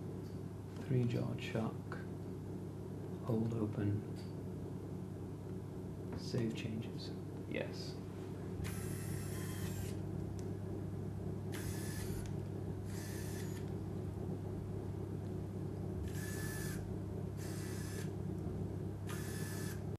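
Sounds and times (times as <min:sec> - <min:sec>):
steady low hum: 0:00.0 - 0:19.9
small motors whirring: 0:08.6 - 0:10.0, 0:11.5 - 0:13.7, 0:16.0 - 0:16.8, 0:17.4 - 0:18.1, 0:19.1 - 0:19.9.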